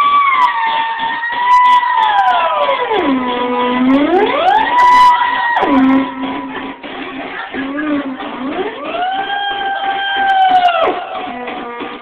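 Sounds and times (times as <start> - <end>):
theremin sliding note: 0.0 - 6.6.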